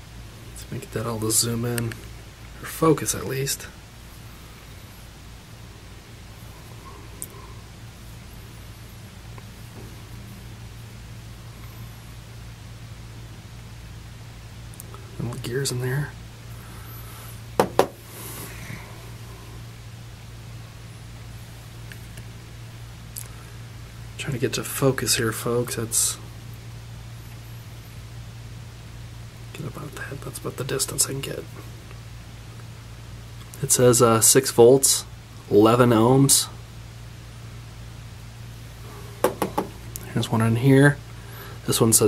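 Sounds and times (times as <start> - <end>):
background hiss: 0.0 - 42.0
steady low hum: 0.0 - 42.0
metal motors knocking on table: 17.6 - 18.0, 39.2 - 39.8.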